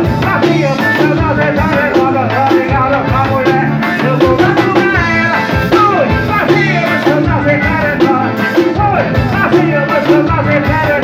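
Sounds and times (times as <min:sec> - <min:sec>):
accordion: 0:00.0 - 0:11.0
drum kit: 0:00.0 - 0:11.0
electric bass: 0:00.0 - 0:11.0
person singing: 0:00.0 - 0:11.0.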